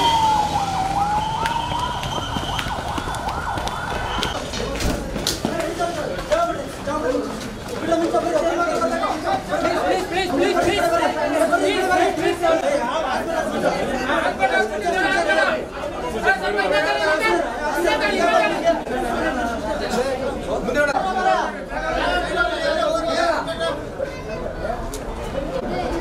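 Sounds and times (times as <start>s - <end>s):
dense crowd chatter: 2.4s - 26.0s.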